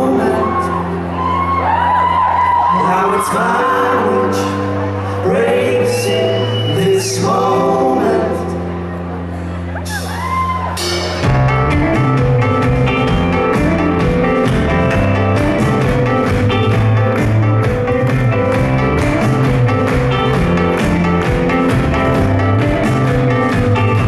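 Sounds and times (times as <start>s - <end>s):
rock band playing: 10.0s - 24.0s
steady drum beat: 10.8s - 24.0s.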